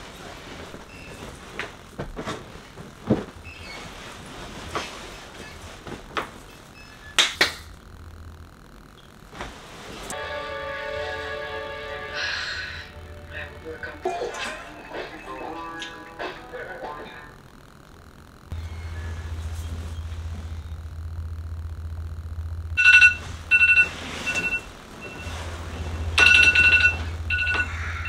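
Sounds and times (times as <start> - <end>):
bedding being tossed about: 0.0 - 6.7
music: 10.2 - 17.3.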